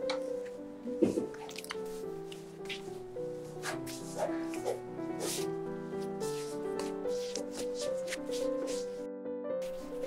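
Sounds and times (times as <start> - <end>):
background music of held notes: 0.0 - 10.0
dough squishing and slapping: 6.1 - 9.0.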